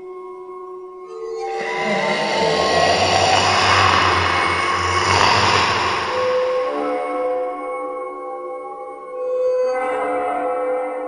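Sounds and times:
harsh noise swell: 0:01.4 - 0:07.5.

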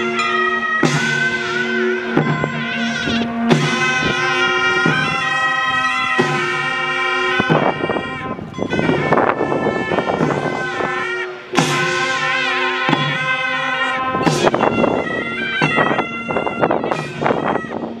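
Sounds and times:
drum strikes: 0:00.0 - 0:07.9, 0:08.5 - 0:14.9, 0:15.6 - 0:17.5
reedy horns holding notes: 0:00.0 - 0:18.0.

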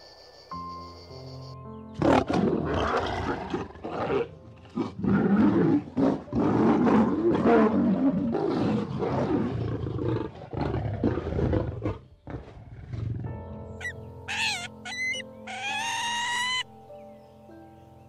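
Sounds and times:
lioness calling: 0:13.8 - 0:16.7.

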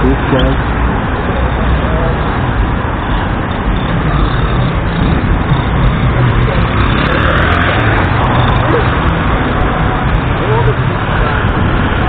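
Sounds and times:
vehicle engines passing: 0:00.0 - 0:12.0
faint voices: 0:06.2 - 0:12.0.

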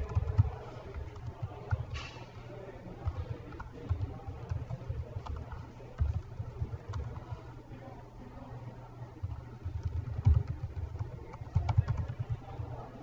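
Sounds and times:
keyboard typing: 0:00.0 - 0:02.2, 0:02.9 - 0:07.5, 0:09.2 - 0:12.8.

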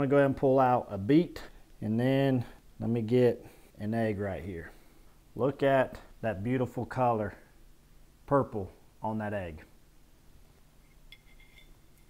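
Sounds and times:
cutlery clinking on dishware: 0:11.1 - 0:12.0.

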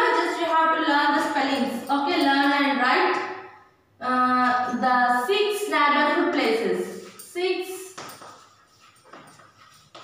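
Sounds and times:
chalk scratching on chalkboard: 0:06.9 - 0:10.0.

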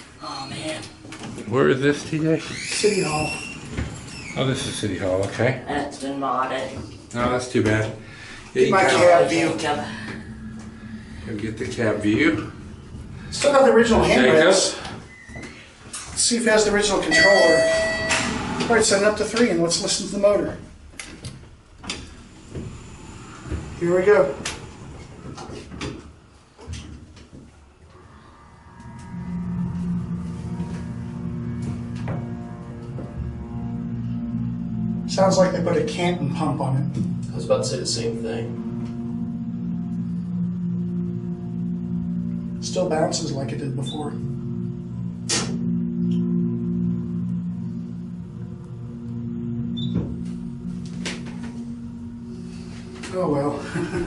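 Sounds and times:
elevator pump motor humming: 0:27.8 - 0:54.0.

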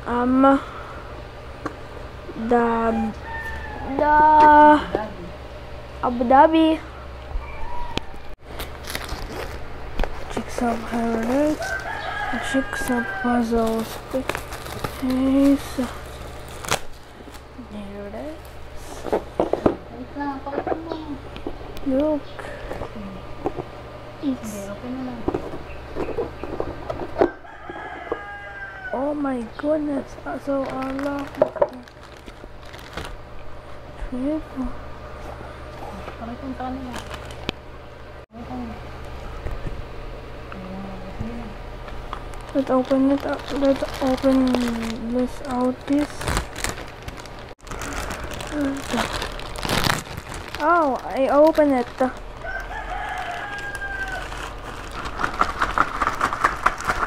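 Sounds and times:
rooster crowing: 0:02.8 - 0:04.2, 0:07.3 - 0:08.4, 0:11.5 - 0:13.8, 0:27.2 - 0:29.1, 0:52.2 - 0:54.8
plastic bag crinkling: 0:08.4 - 0:18.4, 0:30.3 - 0:33.7, 0:36.6 - 0:37.5, 0:42.0 - 0:57.0.

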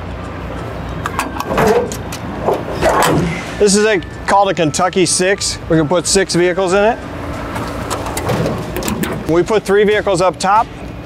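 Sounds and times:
latch clank: 0:01.0 - 0:03.3, 0:07.9 - 0:09.4
metallic latch clicks: 0:07.9 - 0:09.4.

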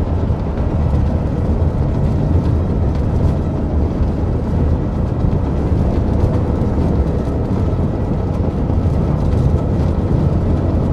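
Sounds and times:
loud deep rumble: 0:00.0 - 0:10.9.

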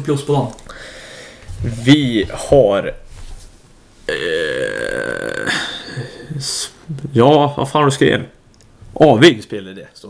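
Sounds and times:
person's drawn-out vocal sound: 0:04.1 - 0:06.6.

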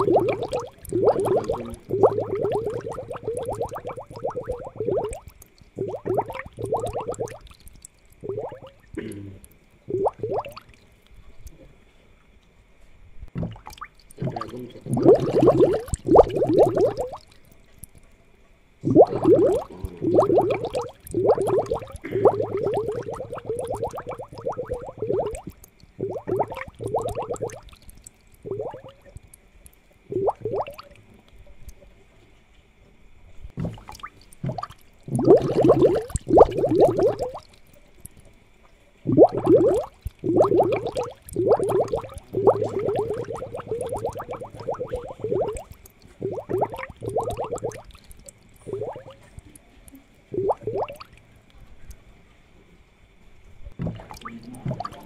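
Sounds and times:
aquarium water bubbling: 0:00.0 - 0:12.4, 0:13.1 - 0:32.2, 0:33.0 - 0:55.0.

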